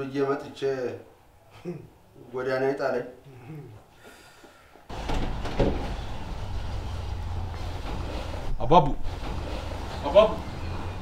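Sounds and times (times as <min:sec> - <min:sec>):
vehicle engine rumbling: 0:04.9 - 0:11.0.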